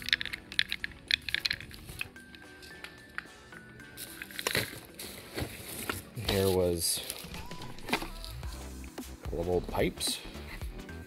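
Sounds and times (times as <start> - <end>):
small hard objects clinking: 0.0 - 8.5.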